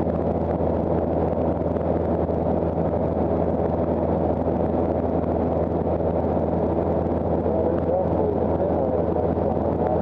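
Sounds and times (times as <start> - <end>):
propeller plane engine drone: 0.0 - 10.0.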